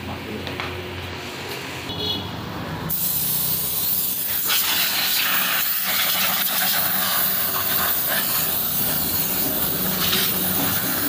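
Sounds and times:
compressed air hissing: 2.9 - 11.0.

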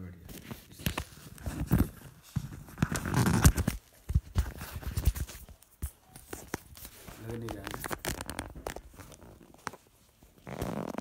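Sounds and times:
microphone handling rustle: 0.2 - 11.0.

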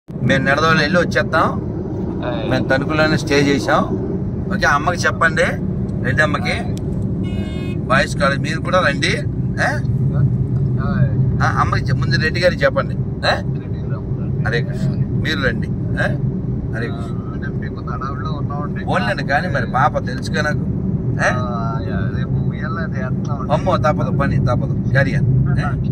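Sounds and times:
car road and engine rumble: 0.1 - 25.9
person speaking: 2.1 - 6.8, 7.7 - 16.2, 16.8 - 20.5, 21.2 - 25.0.

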